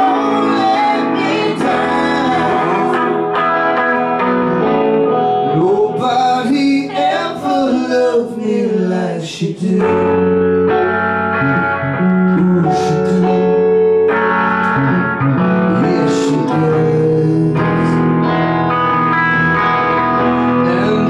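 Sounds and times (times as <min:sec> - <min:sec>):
person singing: 0:00.0 - 0:18.3, 0:19.6 - 0:21.0
electric guitars playing slow rock: 0:00.0 - 0:21.0.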